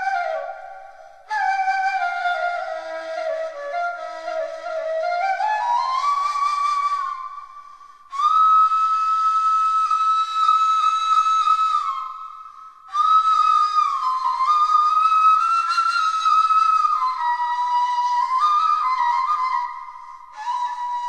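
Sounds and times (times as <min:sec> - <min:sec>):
slow flute melody: 0:00.0 - 0:21.0.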